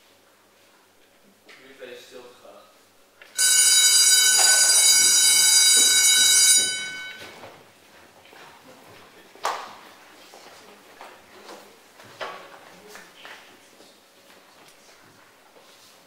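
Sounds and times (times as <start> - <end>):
electric school bell ringing: 3.4 - 7.5.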